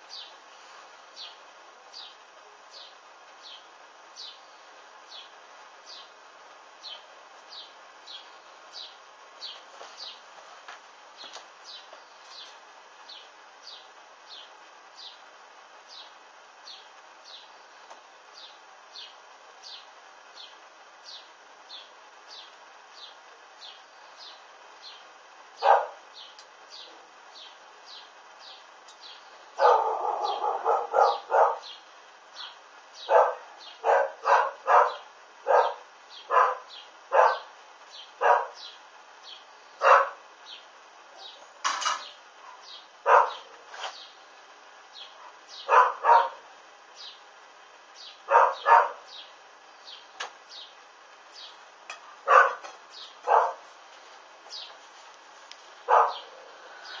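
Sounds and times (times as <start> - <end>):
dog barking: 25.6 - 26.0, 29.6 - 31.7, 33.0 - 37.5, 38.2 - 38.6, 39.8 - 40.2, 43.0 - 43.5, 45.2 - 46.4, 48.3 - 49.0, 52.2 - 53.7, 55.8 - 56.5.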